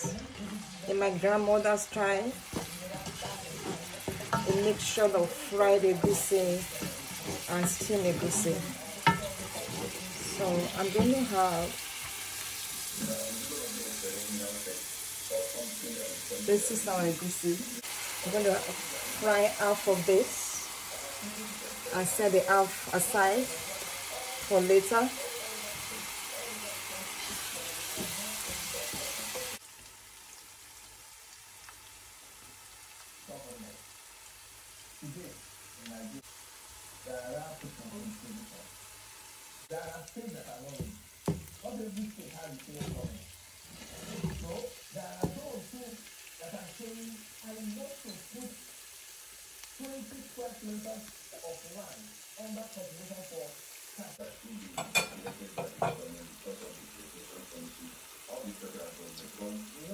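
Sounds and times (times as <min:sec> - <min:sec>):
wooden spoon stirring frying paste: 0:00.0 - 0:30.9, 0:31.6 - 0:52.8
paste sizzling in hot oil: 0:00.0 - 0:59.9.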